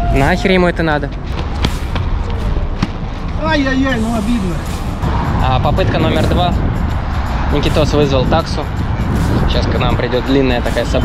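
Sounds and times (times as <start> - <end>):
street and wind rumble: 0.0 - 11.0
footsteps on stone paving: 1.1 - 3.7.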